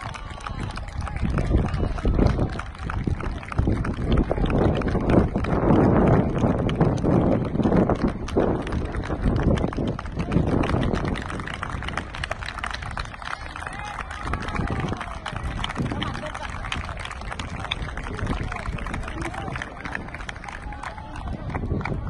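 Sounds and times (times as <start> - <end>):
group of people clapping: 0.0 - 22.0
wind buffeting microphone: 0.0 - 22.0
voices: 10.0 - 22.0.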